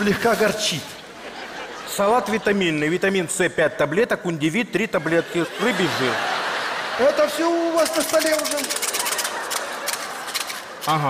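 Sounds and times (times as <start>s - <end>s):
person speaking: 0.0s - 1.0s, 7.0s - 9.3s, 10.6s - 11.0s
studio audience laughing: 1.0s - 3.1s, 4.9s - 11.0s
scattered clapping: 7.8s - 10.9s.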